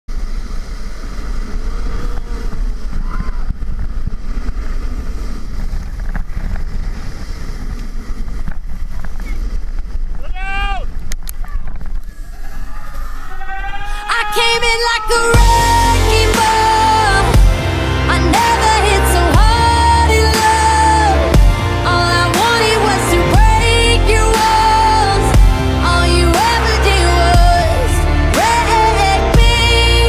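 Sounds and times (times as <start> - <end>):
snow tube scraping downhill: 0.1 - 13.7
wind buffeting microphone: 0.1 - 15.8
person whooping: 3.0 - 3.5, 12.1 - 15.6
song playing: 14.4 - 30.0.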